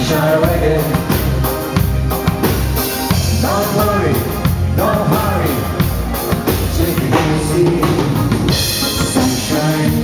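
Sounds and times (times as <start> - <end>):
live band playing reggae: 0.0 - 10.0.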